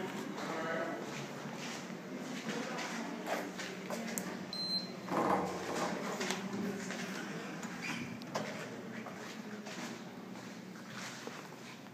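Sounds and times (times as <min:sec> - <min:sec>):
card reader beep: 0:04.5 - 0:05.1.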